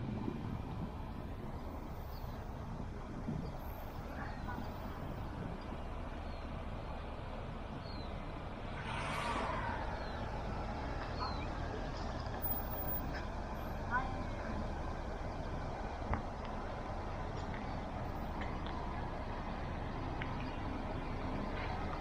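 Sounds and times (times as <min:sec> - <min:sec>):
distant road traffic rumble: 0:00.0 - 0:22.0.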